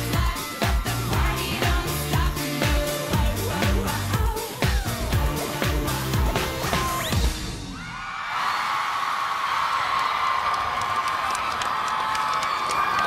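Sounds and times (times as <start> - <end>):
pop song: 0.0 - 7.8
crowd cheering and screaming: 7.7 - 13.0.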